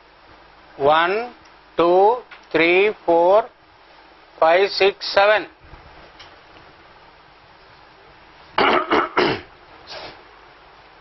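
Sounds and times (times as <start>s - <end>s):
man coughing: 8.6s - 9.5s.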